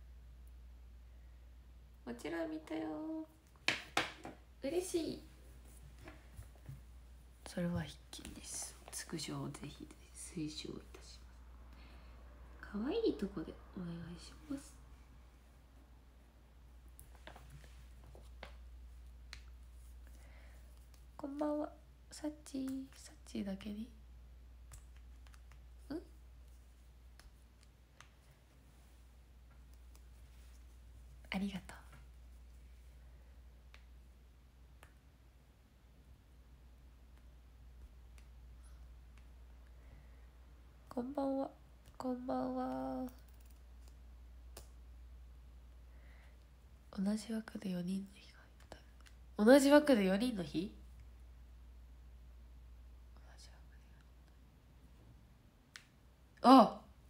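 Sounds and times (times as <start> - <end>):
low steady hum: 0.0 - 57.0
faint whisper: 7.4 - 15.2, 30.5 - 32.8, 46.1 - 49.0, 53.1 - 54.4
faint clicks: 42.7 - 44.8.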